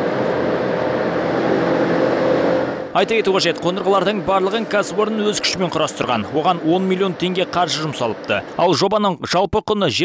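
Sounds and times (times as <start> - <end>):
machinery whirring: 0.0 - 8.9.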